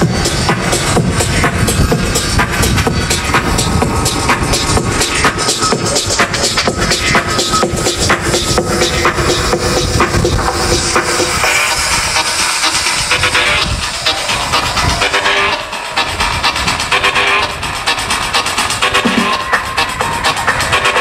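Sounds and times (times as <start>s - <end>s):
loud electronic dance music: 0.0s - 21.0s.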